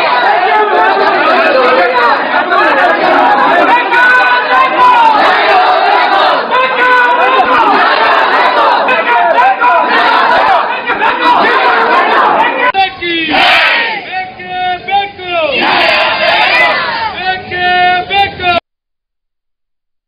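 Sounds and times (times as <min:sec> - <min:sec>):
crowd of men shouting: 0:00.0 - 0:18.6
voices calling out loudly: 0:00.0 - 0:18.6.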